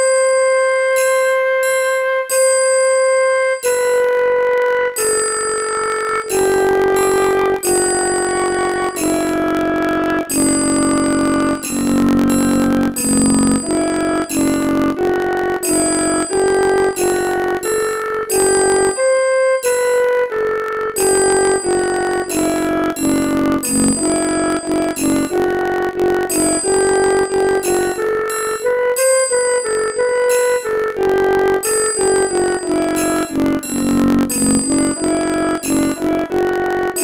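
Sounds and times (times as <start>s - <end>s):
synthesized sustained notes: 2.8s - 37.0s.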